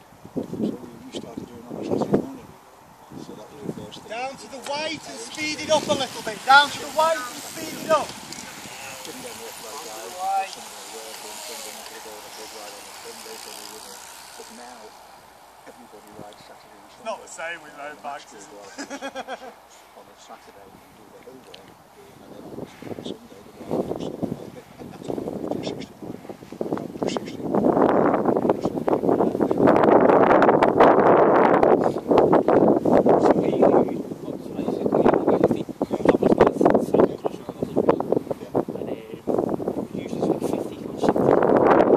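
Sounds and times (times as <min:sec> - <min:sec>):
wind buffeting microphone: 0:00.0 - 0:18.9, 0:20.3 - 0:41.9
faint talking: 0:00.6 - 0:27.5, 0:28.2 - 0:29.7
bicycles riding past: 0:02.9 - 0:27.0.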